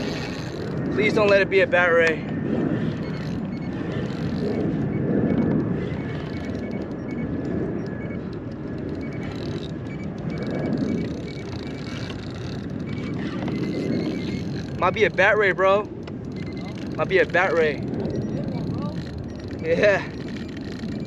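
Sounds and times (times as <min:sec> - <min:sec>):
fishing reel ticking: 0:00.0 - 0:02.2, 0:02.8 - 0:21.0
wind buffeting microphone: 0:00.0 - 0:21.0.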